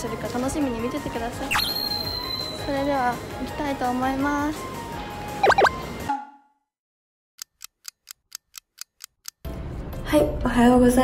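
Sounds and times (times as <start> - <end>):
clock ticking: 7.4 - 9.4.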